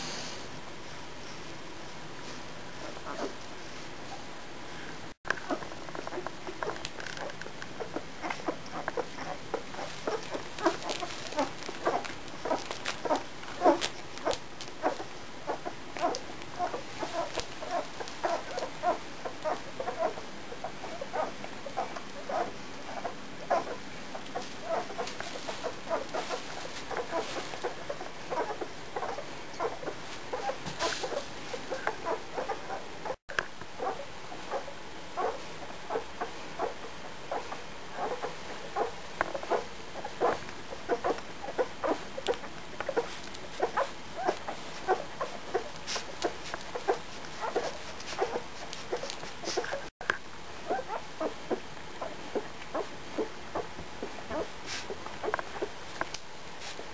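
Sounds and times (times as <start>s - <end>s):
puppies squeaking and suckling: 2.8s - 3.4s, 5.3s - 33.2s, 33.8s - 49.9s, 50.6s - 56.8s.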